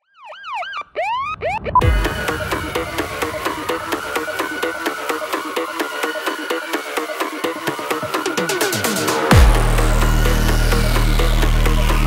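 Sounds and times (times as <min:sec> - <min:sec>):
synth siren-like glides: 0:00.0 - 0:12.0
electronic dance beat: 0:01.5 - 0:12.0
heavy bass hit: 0:09.1 - 0:12.0.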